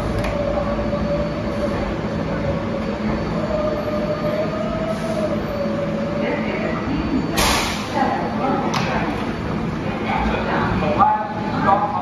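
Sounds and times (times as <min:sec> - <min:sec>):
subway train rumbling: 0:00.0 - 0:12.0.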